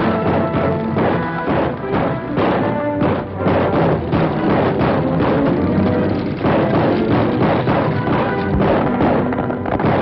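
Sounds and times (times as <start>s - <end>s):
orchestral film music: 0.0s - 10.0s.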